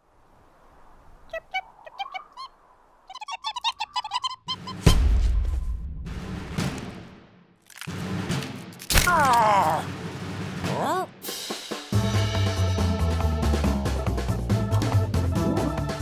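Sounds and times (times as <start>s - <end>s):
music: 7.9s - 9.0s, 9.8s - 16.0s.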